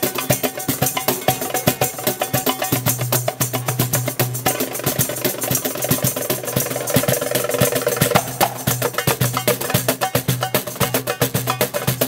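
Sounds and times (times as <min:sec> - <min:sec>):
hand drums playing: 0:00.0 - 0:12.0.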